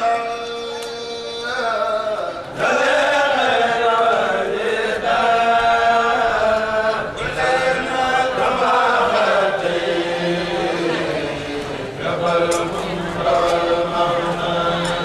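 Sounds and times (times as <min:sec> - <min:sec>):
group of men chanting: 0:02.6 - 0:15.0.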